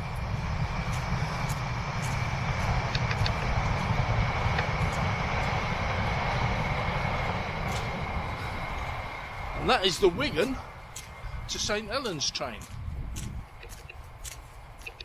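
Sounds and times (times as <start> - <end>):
distant train rumble: 0.0 - 15.0
high train whine: 0.0 - 15.0.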